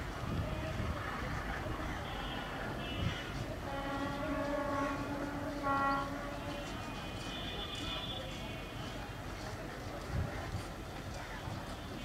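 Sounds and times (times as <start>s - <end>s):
locomotive horn: 2.3s - 8.3s.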